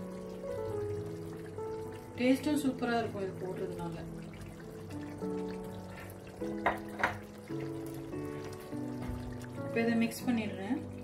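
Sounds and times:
background music of held notes: 0:00.0 - 0:11.0.

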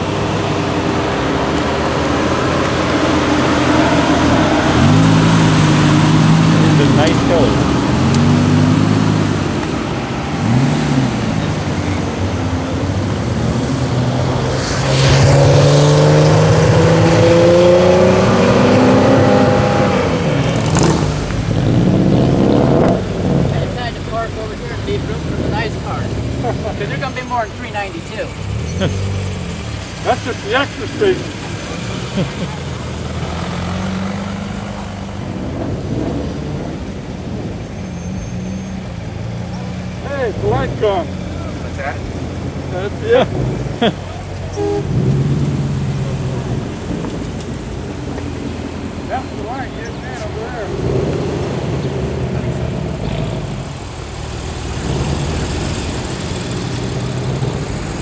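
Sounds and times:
sports cars driving past revving: 0:00.0 - 0:58.0.

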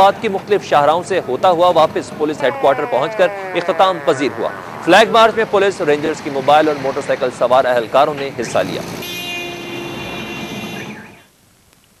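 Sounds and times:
vehicle traffic: 0:00.0 - 0:11.3.

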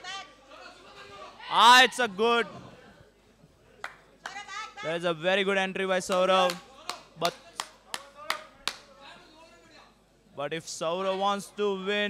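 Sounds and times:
hand claps: 0:03.8 - 0:04.4, 0:06.1 - 0:08.9.

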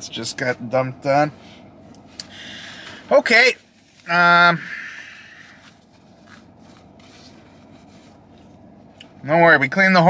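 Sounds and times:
rubbing and rustling of wiping: 0:05.4 - 0:08.8.

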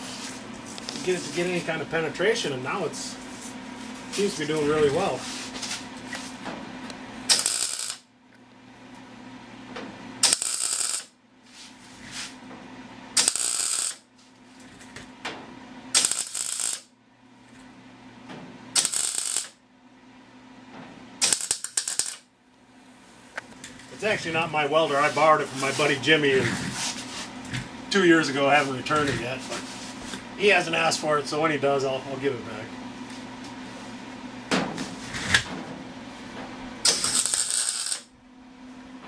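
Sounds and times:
low welder hum: 0:00.0 - 0:39.0
welding arc crackling: 0:07.3 - 0:08.1, 0:10.2 - 0:11.2, 0:13.2 - 0:14.0, 0:15.9 - 0:16.9, 0:18.8 - 0:19.6, 0:21.2 - 0:22.3, 0:36.8 - 0:38.1.

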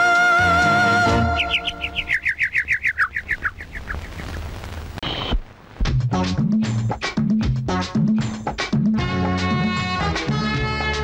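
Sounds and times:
bird-like chirps in music: 0:00.6 - 0:04.3.

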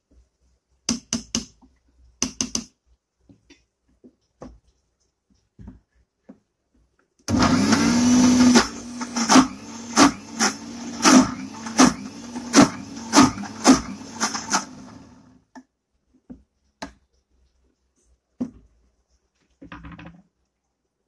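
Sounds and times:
mixer grinder motor humming: 0:07.3 - 0:15.3.

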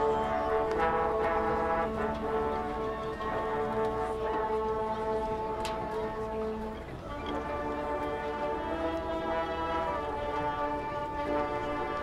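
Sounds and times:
brass section playing chords: 0:00.0 - 0:12.0.

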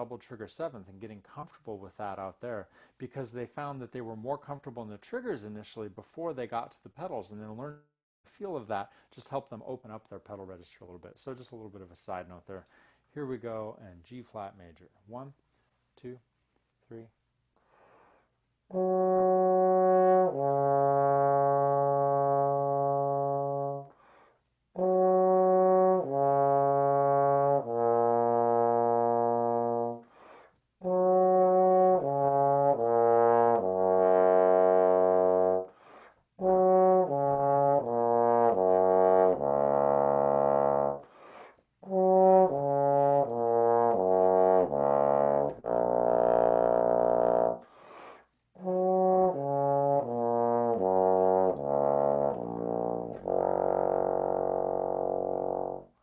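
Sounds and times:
player breathing: 0:17.6 - 0:18.4, 0:23.9 - 0:24.5, 0:30.0 - 0:30.7, 0:35.7 - 0:36.3, 0:41.0 - 0:41.7, 0:47.6 - 0:48.4
bass trombone playing arpeggios: 0:18.7 - 0:23.9, 0:24.8 - 0:30.0, 0:30.8 - 0:35.7, 0:36.4 - 0:41.1, 0:41.8 - 0:47.6, 0:48.6 - 0:56.0.

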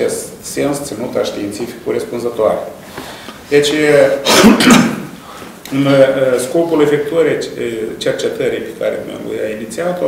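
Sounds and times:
man speaking: 0:00.0 - 0:02.8, 0:03.5 - 0:10.0
man clearing his throat: 0:04.2 - 0:05.2.

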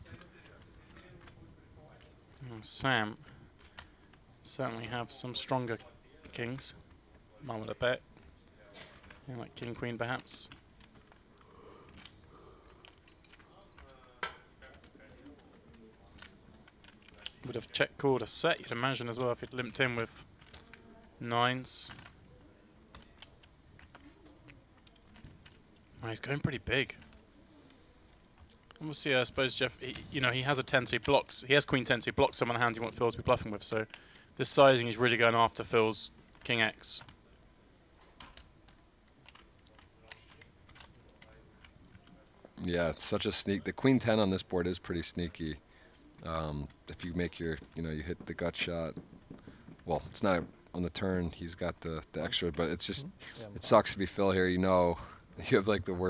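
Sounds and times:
poker chips clicking: 0:38.0 - 0:42.2.

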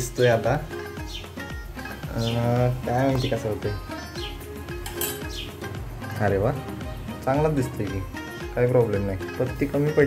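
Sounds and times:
background music: 0:00.0 - 0:10.0
spoon scraping a metal saucepan: 0:04.8 - 0:05.4.

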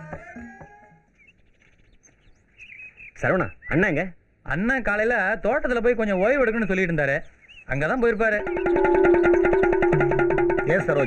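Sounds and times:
faint bird chirps: 0:00.1 - 0:04.0, 0:06.0 - 0:11.0.

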